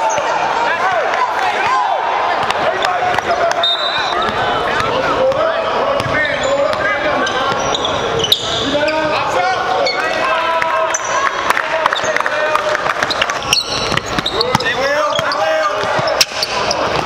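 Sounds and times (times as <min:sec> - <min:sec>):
players' voices calling out: 0:00.0 - 0:17.0
sneaker squeaks: 0:03.5 - 0:10.3, 0:13.0 - 0:17.0
basketball dribbling on hardwood: 0:13.8 - 0:14.7.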